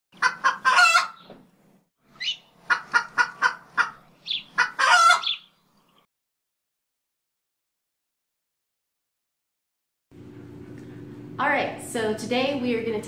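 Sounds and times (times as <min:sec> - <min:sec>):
chicken cackling: 0:00.2 - 0:01.3, 0:02.2 - 0:05.5.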